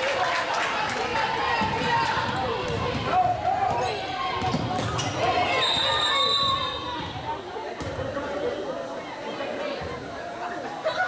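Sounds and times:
indistinct voices echoing in gym: 0:00.0 - 0:11.0.

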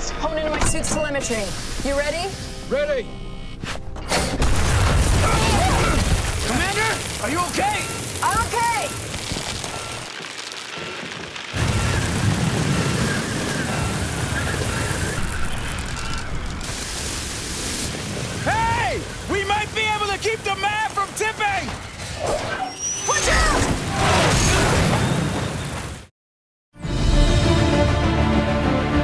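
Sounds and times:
music: 0:00.0 - 0:04.5, 0:26.8 - 0:29.0.

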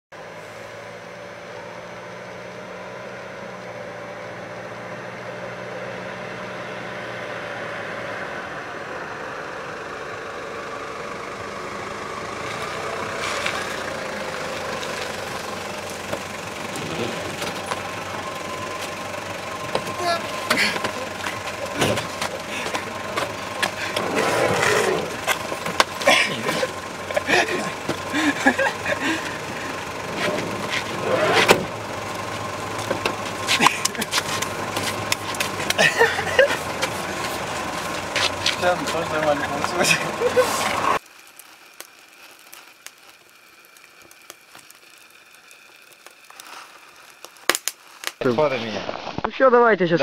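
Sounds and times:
van engine running: 0:00.1 - 0:41.3.

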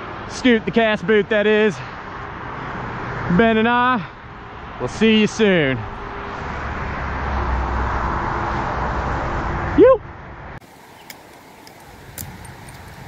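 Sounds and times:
highway traffic rushing: 0:00.0 - 0:13.0
light clicks: 0:11.0 - 0:13.0.

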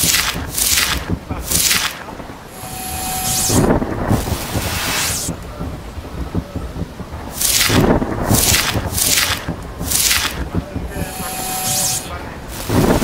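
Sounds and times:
rain hissing: 0:00.0 - 0:13.0
thunder crashes: 0:00.0 - 0:13.0.

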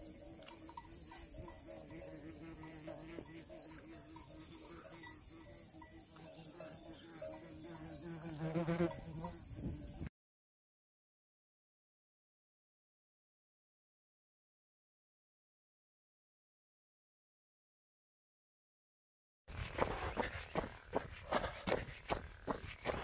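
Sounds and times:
insects chirring: 0:00.0 - 0:10.1.

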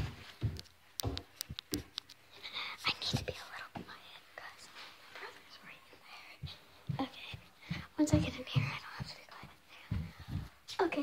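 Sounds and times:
girl whispering: 0:02.4 - 0:11.0.

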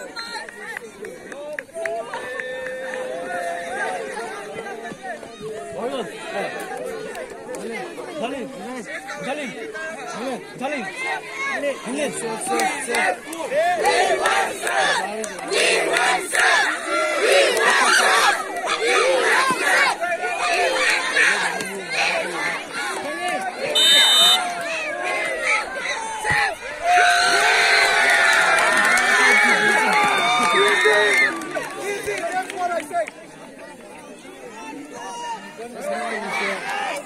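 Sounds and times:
crowd shouting: 0:00.0 - 0:37.0
voices talking and calling out: 0:00.0 - 0:37.0.

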